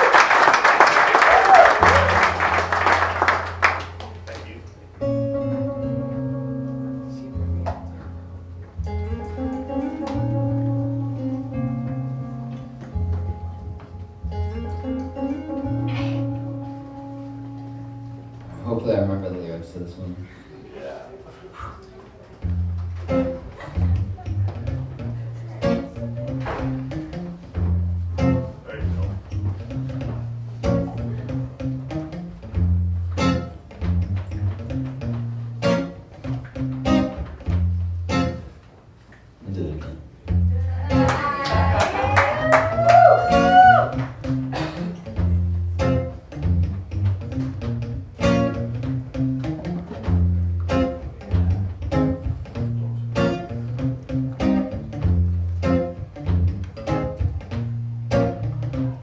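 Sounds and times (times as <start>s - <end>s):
acoustic guitar picking: 4.8s - 19.2s, 22.4s - 38.6s, 43.3s - 59.0s.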